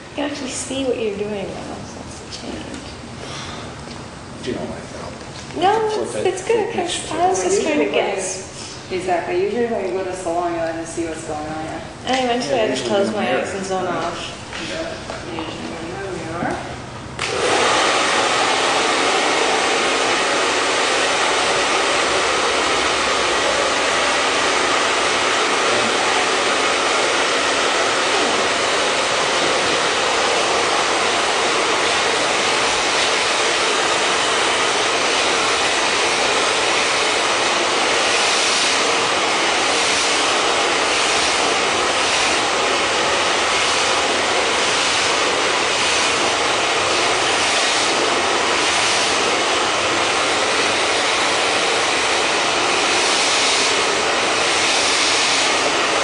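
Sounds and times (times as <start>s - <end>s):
hair dryer blowing: 17.2s - 56.0s.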